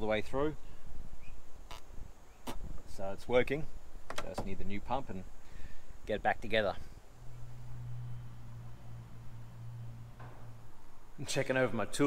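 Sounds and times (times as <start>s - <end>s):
puffs of breath through hose: 5.4s - 6.0s
low rumble: 7.1s - 11.2s.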